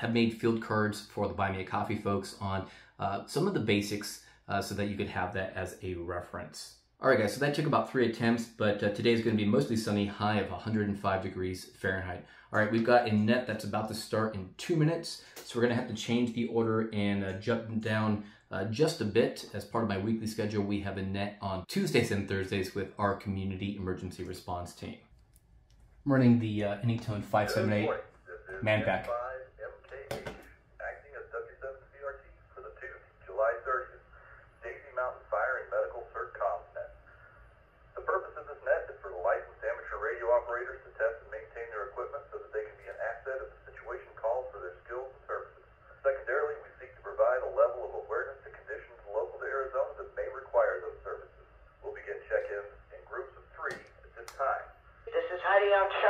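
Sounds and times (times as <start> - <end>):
narrowband speech over radio: 27.3 - 36.9, 38.0 - 56.0.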